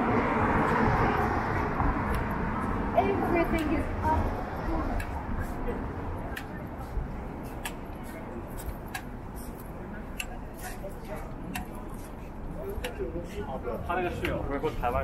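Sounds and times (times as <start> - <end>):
footsteps on concrete sidewalk: 0.0 - 15.0
low rumble of road traffic: 0.0 - 15.0.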